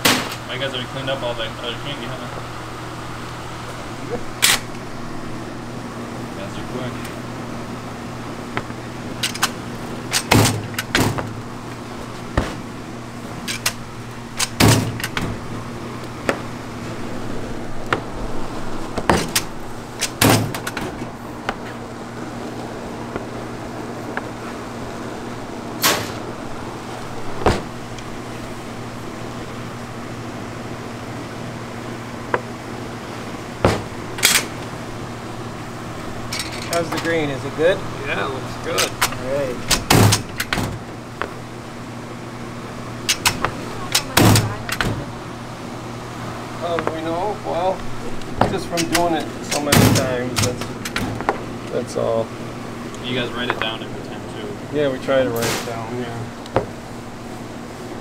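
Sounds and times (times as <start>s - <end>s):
electric motor hum: 0.0s - 55.4s.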